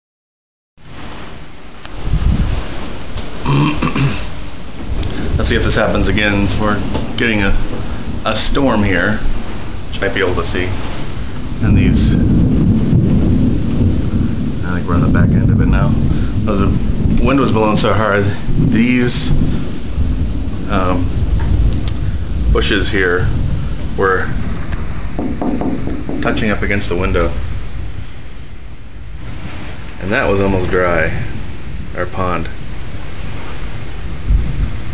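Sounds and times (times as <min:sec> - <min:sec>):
heavy rain and wind: 0:00.8 - 0:34.9
deep rumble: 0:04.8 - 0:34.9.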